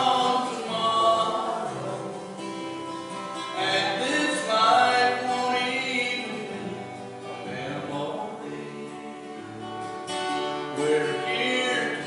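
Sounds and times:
person singing: 0.0 - 9.7, 10.6 - 12.0
acoustic and electric guitars: 0.0 - 12.0.

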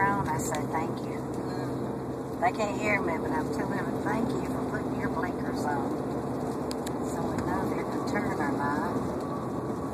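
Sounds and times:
car road and engine noise: 0.0 - 9.9.

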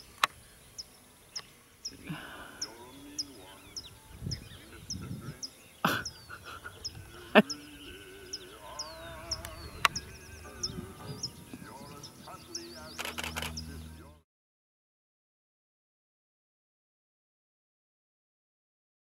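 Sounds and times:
bird chirping high falling chirp: 0.0 - 14.2
sharp clicks: 9.4 - 10.0, 12.9 - 13.7.

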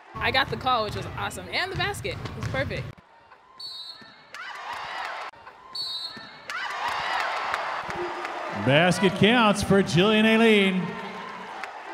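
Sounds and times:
arena crowd noise: 0.0 - 11.9
referee's whistle blast: 3.6 - 4.2, 5.8 - 6.4.

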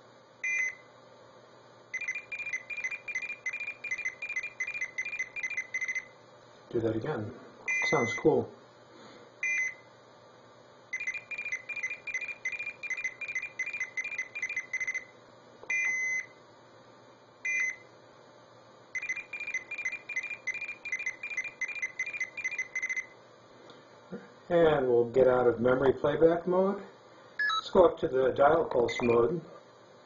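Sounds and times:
rapid beeps: 2.0 - 6.1, 10.9 - 15.1, 19.0 - 23.2, 27.4 - 27.7.

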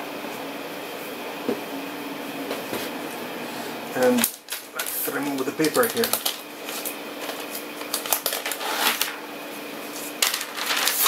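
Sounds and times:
background hum: 0.0 - 11.0.

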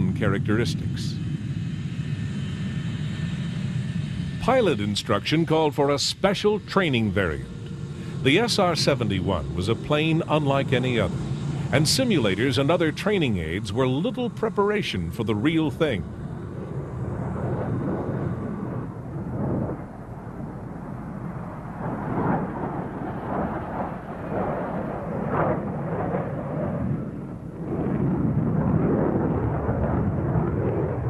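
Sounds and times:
jet engines at takeoff power: 0.0 - 31.0.

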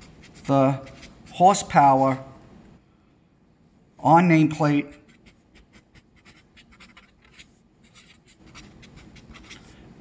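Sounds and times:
marker pen scratching on paper: 0.0 - 2.3, 4.6 - 9.8.

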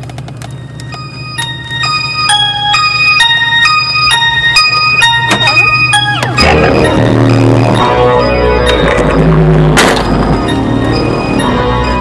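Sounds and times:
organ-like melody: 0.1 - 12.0
deep sustained bass: 0.6 - 12.0
hip-hop music from car stereo: 1.4 - 12.0.

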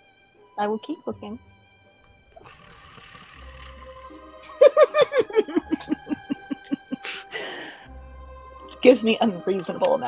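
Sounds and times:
quiet music with long tones: 0.0 - 10.0.

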